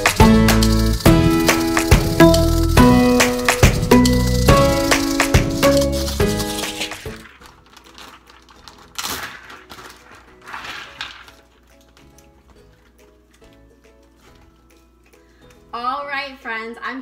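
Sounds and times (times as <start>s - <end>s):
background music: 0.0s - 17.0s
plastic bag rustling: 0.7s - 14.6s.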